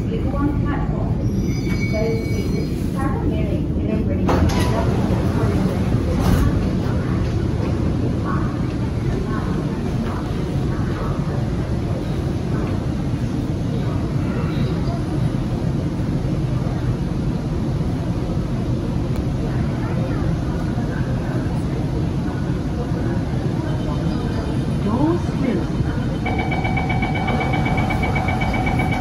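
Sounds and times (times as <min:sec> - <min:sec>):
faint voices: 0:00.0 - 0:29.0
metro car low hum: 0:00.0 - 0:29.0.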